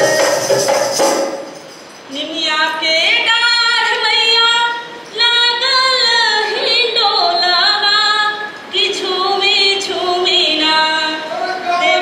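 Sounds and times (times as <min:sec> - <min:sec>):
woman singing unaccompanied: 0:02.1 - 0:12.0.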